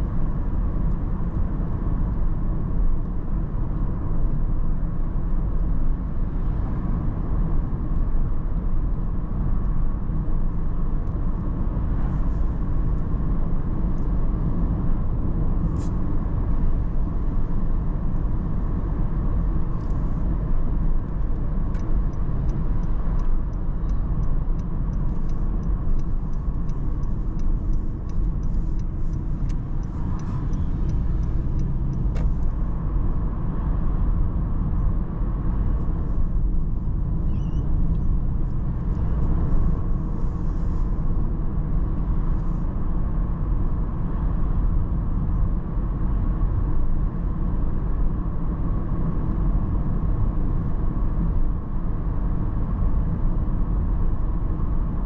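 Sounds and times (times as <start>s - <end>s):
car interior road rumble: 0.0s - 55.0s.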